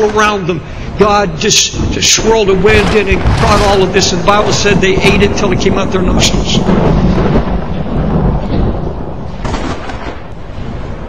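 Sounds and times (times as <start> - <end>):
thunder-like rumble with rushing: 0.0 - 11.0.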